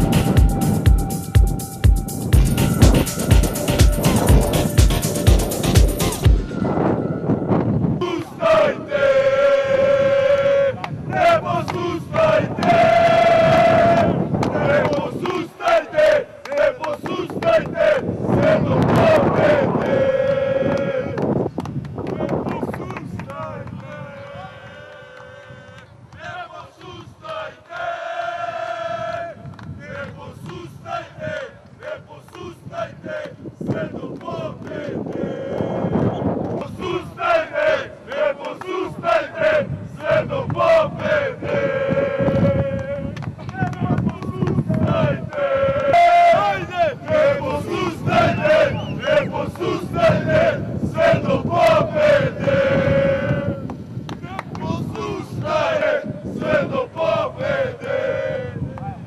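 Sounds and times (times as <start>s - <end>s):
football supporters chanting: 8.0s - 21.4s, 22.1s - 59.0s.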